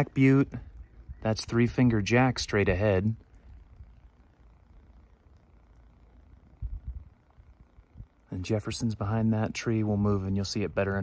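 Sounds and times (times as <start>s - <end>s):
low rumble on microphone: 0.0s - 11.0s.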